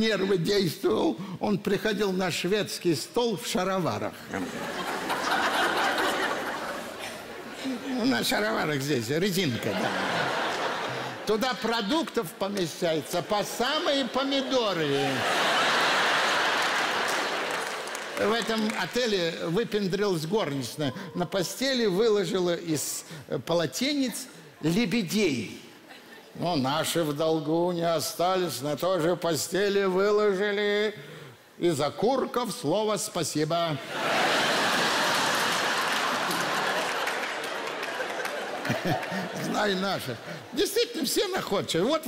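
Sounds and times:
audience applause: 13.9 - 19.0, 34.0 - 39.7.

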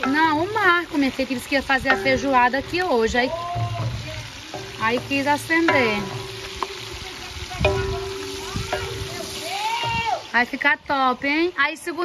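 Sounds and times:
sausage sizzling in fat: 0.0 - 12.0.

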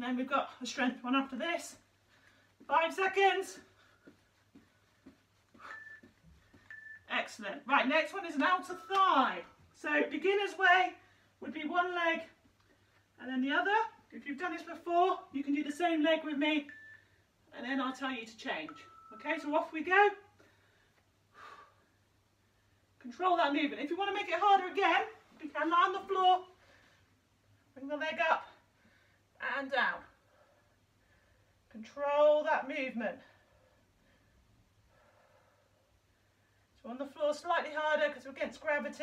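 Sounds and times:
person speaking: 0.0 - 2.0, 2.6 - 12.4, 17.5 - 20.3, 23.0 - 26.6
soft breath: 2.0 - 2.7, 3.7 - 7.0, 26.6 - 27.2, 30.2 - 31.7, 33.2 - 36.8
feet thudding on carpet: 3.8 - 6.7
short high beep: 5.6 - 6.1, 8.7 - 9.2, 16.7 - 17.0, 18.7 - 19.3.

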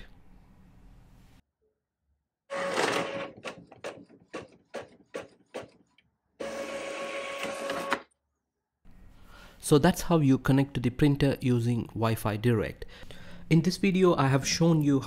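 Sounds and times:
printer motor whirring: 2.5 - 5.6, 6.4 - 8.0.

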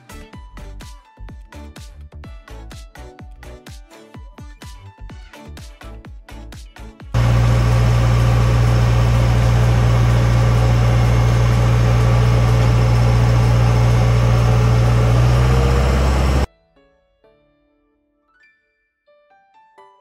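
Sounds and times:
motorboat engine drone: 7.2 - 16.5.

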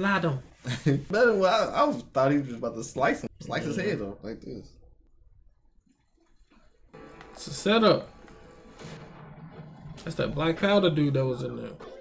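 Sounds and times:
quiet background music: 5.9 - 12.0
sharp impact: 8.3 - 11.2.

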